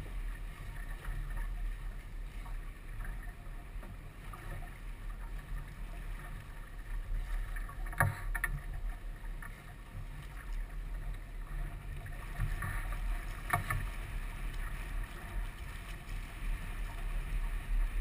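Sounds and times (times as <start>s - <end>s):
water splashing along hull: 0.0s - 18.0s.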